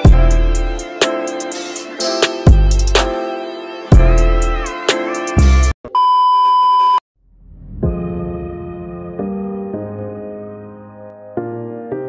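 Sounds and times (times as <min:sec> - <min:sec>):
background music with a beat: 0:00.0 - 0:05.7.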